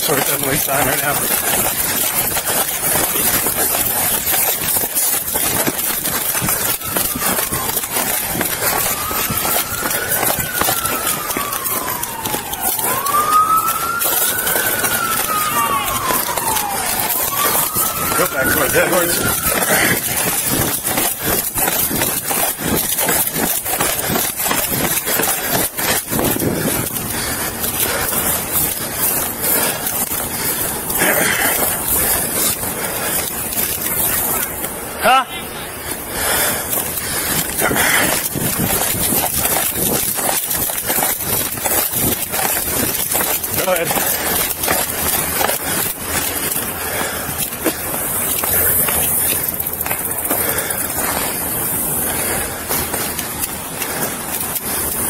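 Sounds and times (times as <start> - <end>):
police siren wailing: 0.0 - 55.0.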